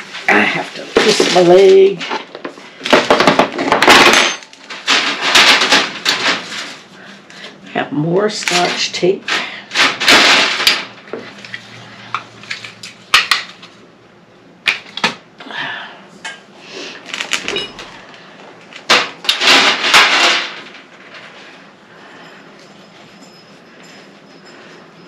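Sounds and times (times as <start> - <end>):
craft supplies clattering and rustling: 0.0 - 7.6, 8.4 - 13.8, 17.0 - 24.8.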